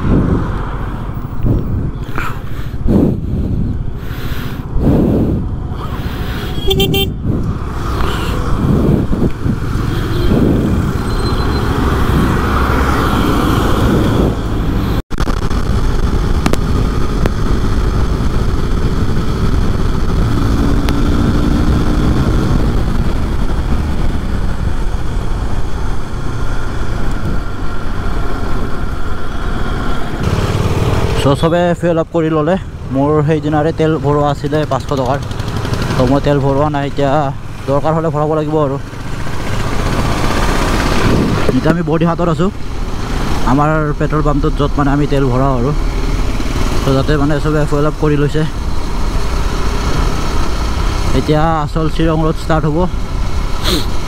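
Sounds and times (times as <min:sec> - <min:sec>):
wind and road noise: 0:00.0 - 0:54.0
motorcycle engine running: 0:34.4 - 0:36.6.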